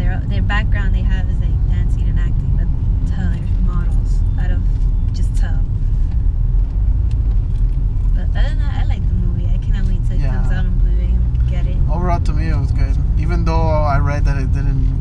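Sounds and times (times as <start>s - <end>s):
people talking: 0.0s - 5.7s, 8.2s - 14.8s
car engine and tyres rumbling: 0.0s - 15.0s.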